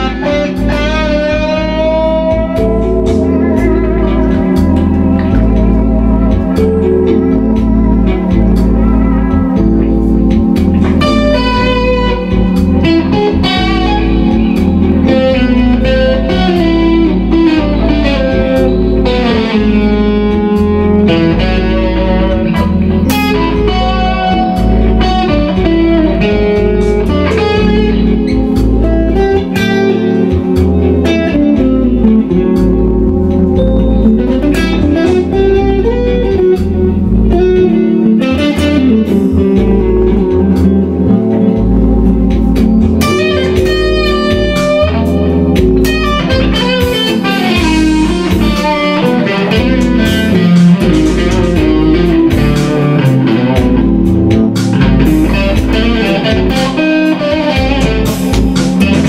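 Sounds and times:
backing track chord: 0.0 - 59.0
electric guitar improvising: 0.0 - 59.0
pulsing bass: 0.0 - 59.0.

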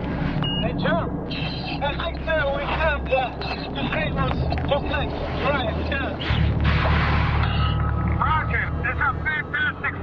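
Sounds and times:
low hum: 0.0 - 10.0
garbled voice over radio: 0.7 - 6.2.

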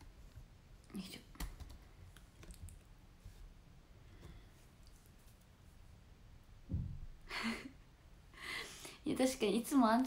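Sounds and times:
faint clicks and taps: 0.3 - 3.4.

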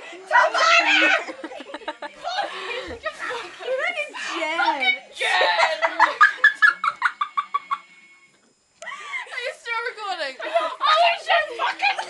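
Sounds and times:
girl laughing: 0.8 - 4.1.

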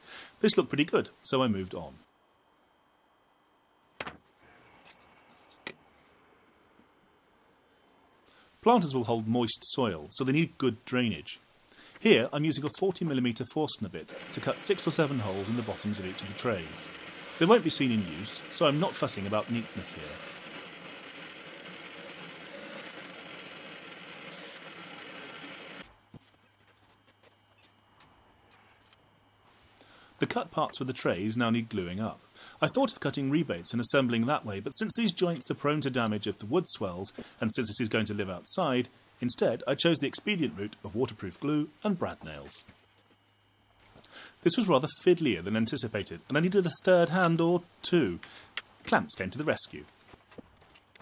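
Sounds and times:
handling wooden boards: 4.0 - 5.8
drill press boring wood: 14.0 - 25.9.

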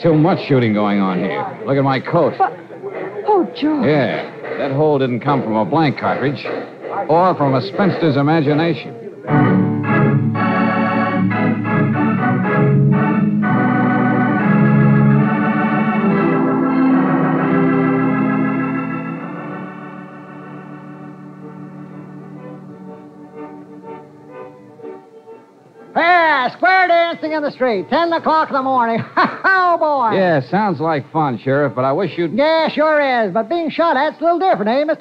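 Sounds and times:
organ chords: 0.0 - 32.6.

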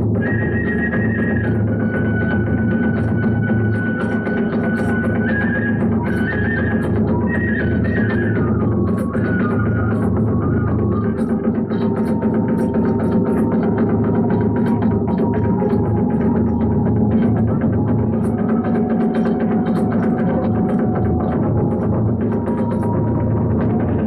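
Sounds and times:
bamboo flute long high notes: 0.0 - 24.0
drum beating fast rhythm: 0.0 - 24.0.

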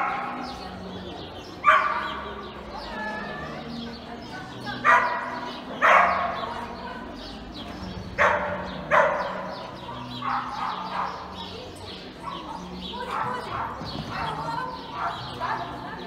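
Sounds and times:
dog barking: 0.0 - 0.6, 1.6 - 2.3, 4.8 - 6.6, 8.2 - 11.6, 12.2 - 15.9.

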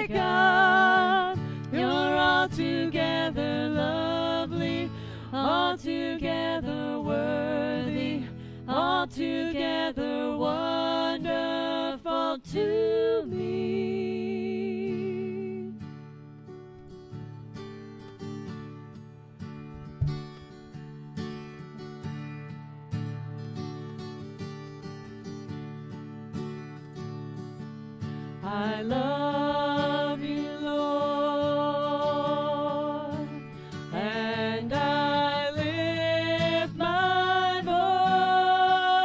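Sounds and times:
acoustic guitar strumming: 0.0 - 9.2, 14.9 - 39.0
woman singing: 0.0 - 15.9, 28.4 - 39.0.

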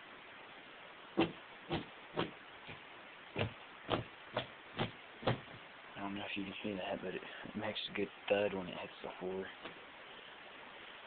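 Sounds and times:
weights thudding on floor: 1.2 - 2.3, 3.4 - 5.6.

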